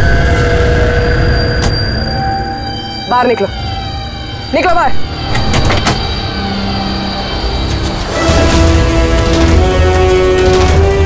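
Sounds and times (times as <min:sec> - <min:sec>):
vehicle engines rumbling: 0:03.0 - 0:11.0.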